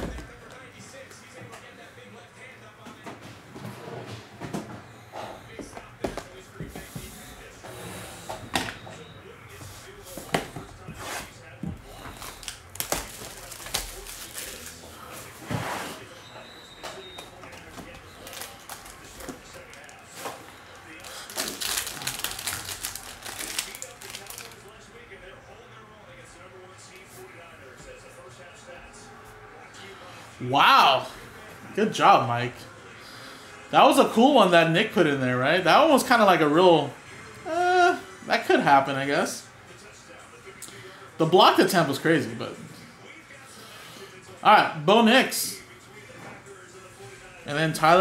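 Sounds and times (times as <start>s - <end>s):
wrapper crinkling: 11.9s - 15.0s, 17.6s - 20.2s, 20.8s - 24.7s.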